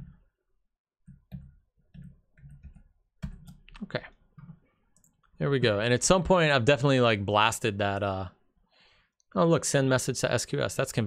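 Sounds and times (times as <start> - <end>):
computer keyboard keys tapping: 1.0 - 3.8.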